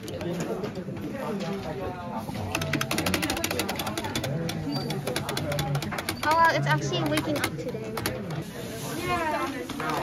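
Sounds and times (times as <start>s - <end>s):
background voices talking: 0.0s - 10.0s.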